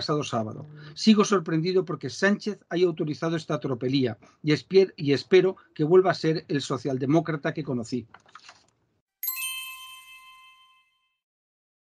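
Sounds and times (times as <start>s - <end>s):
bell-like chime: 9.2s - 11.3s.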